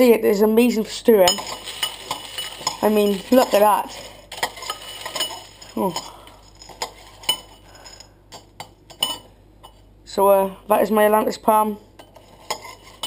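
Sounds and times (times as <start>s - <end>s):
spoon clinking in ceramic bowl: 1.2s - 3.3s, 4.4s - 9.8s.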